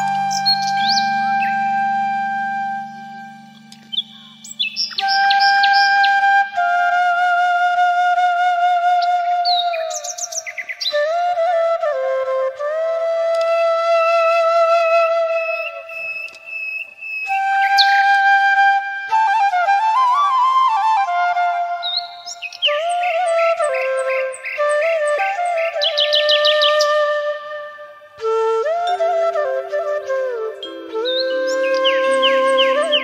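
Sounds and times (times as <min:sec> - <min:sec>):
birdsong chirps: 0:00.0 - 0:06.5, 0:08.8 - 0:11.5, 0:13.3 - 0:18.3, 0:19.4 - 0:27.6, 0:29.8 - 0:33.0
held flute note: 0:00.0 - 0:33.0.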